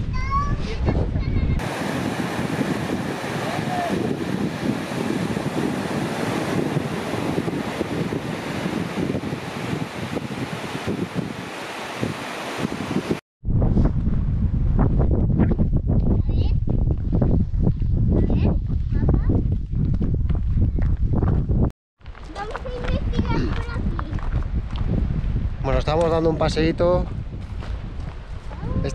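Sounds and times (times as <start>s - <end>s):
wind on microphone: 0.0s - 28.9s
waves breaking on beach: 1.6s - 13.2s.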